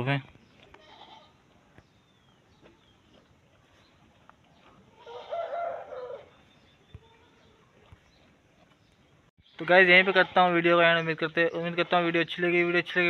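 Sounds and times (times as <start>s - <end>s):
farm animal crying: 0.7s - 1.4s, 4.8s - 7.7s, 9.9s - 10.6s.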